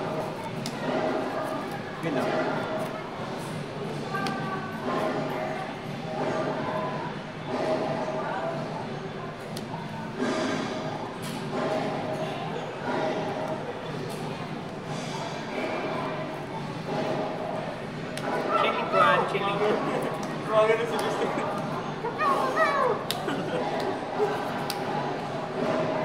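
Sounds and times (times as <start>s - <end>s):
indistinct voices talking: 0.0s - 26.0s.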